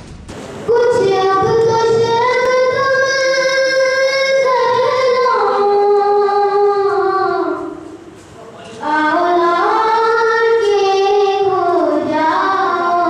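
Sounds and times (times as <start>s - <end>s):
boy singing into a microphone: 0.7s - 13.0s.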